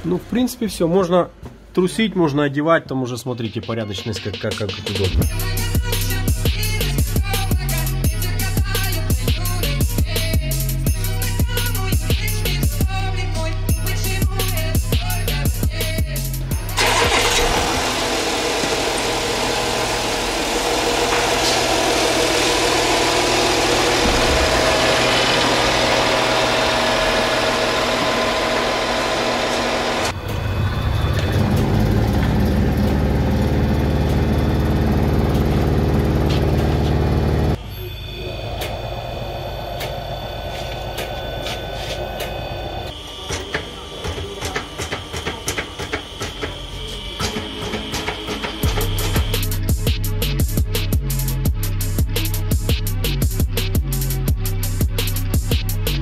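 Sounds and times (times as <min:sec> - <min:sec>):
engine ticking: 0:16.7 - 0:37.6
car engine running: 0:16.7 - 0:42.9.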